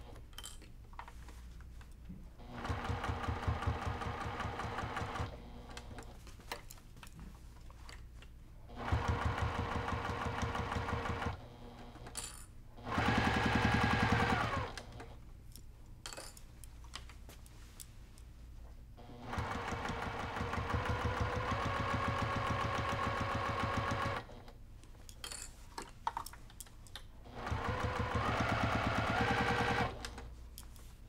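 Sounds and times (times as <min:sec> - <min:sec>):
sewing machine stitching: 0:02.4 - 0:06.1, 0:08.7 - 0:12.0, 0:12.8 - 0:15.2, 0:19.0 - 0:24.4, 0:27.3 - 0:30.3.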